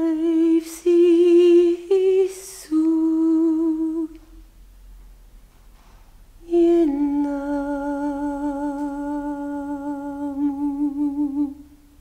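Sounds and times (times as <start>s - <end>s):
person singing wordless notes: 6.5s - 11.8s.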